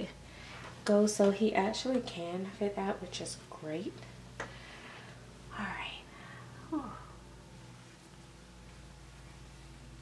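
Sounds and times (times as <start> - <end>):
woman humming under breath: 6.5 - 7.2.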